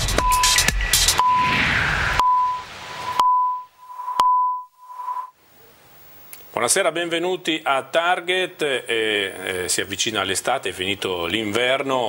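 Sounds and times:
short high beep: 0:01.2 - 0:01.6, 0:02.2 - 0:05.3.

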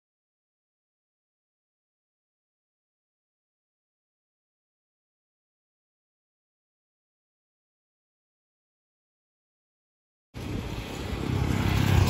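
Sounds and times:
small motorcycle passing: 0:10.4 - 0:12.0.

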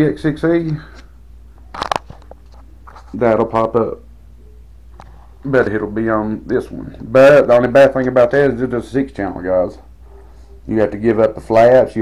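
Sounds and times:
low steady hum: 0:00.0 - 0:12.0
crunchy handling rustle: 0:00.9 - 0:03.4.

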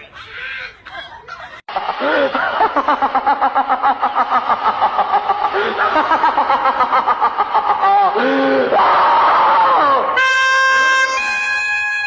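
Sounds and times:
man laughing loudly: 0:00.8 - 0:08.8.

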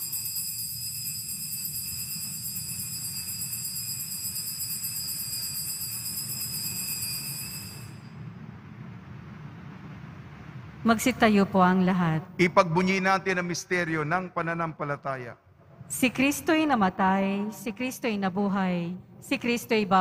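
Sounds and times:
hand bells ringing: 0:00.0 - 0:08.1.

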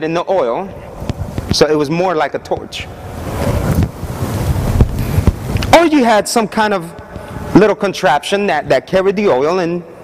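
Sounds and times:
low rumbling wind on microphone: 0:00.7 - 0:07.6.

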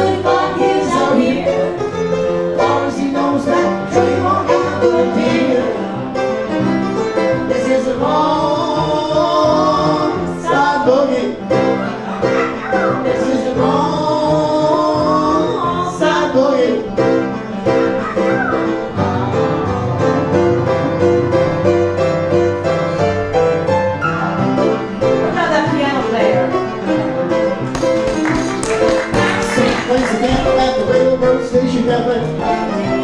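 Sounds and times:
upright piano playing: 0:00.0 - 0:33.0
person singing: 0:02.6 - 0:06.0, 0:07.1 - 0:17.1, 0:29.4 - 0:33.0.

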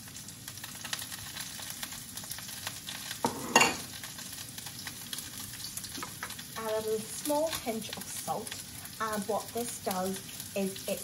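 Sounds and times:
onion sizzling in hot oil: 0:00.0 - 0:11.0.

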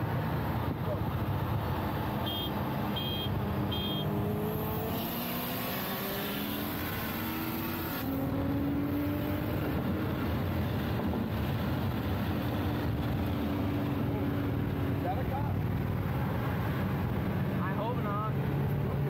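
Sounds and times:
car engine accelerating: 0:03.4 - 0:12.9.

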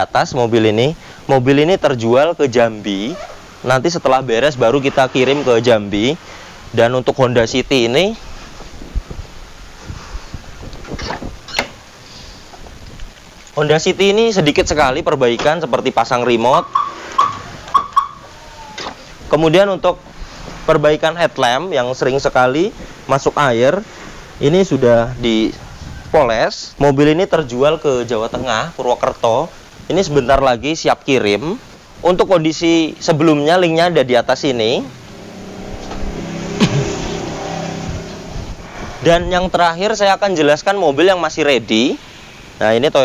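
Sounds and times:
vehicle engine passing: 0:03.8 - 0:06.3, 0:16.4 - 0:17.7, 0:34.5 - 0:39.9
car alarm chirps: 0:16.5 - 0:18.3.

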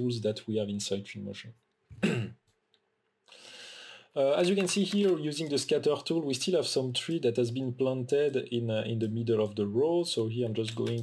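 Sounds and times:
hissy in-breath: 0:03.3 - 0:04.1.

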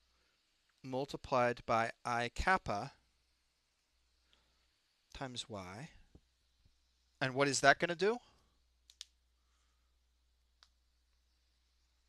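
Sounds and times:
person speaking: 0:00.8 - 0:03.0, 0:05.2 - 0:06.0, 0:07.2 - 0:08.3
short clicks: 0:08.8 - 0:09.2.

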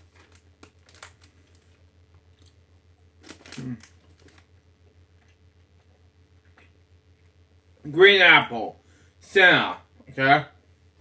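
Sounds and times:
packaging crinkling: 0:00.0 - 0:02.6, 0:03.2 - 0:04.6
person chewing candy: 0:03.2 - 0:04.5.

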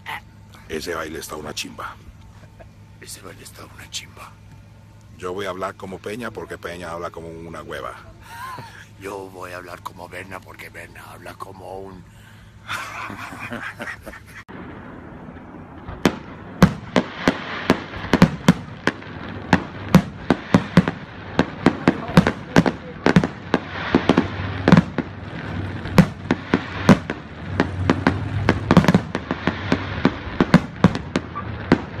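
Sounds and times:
steady low background noise: 0:00.0 - 0:32.0
fireworks bangs and crackles: 0:12.8 - 0:32.0.

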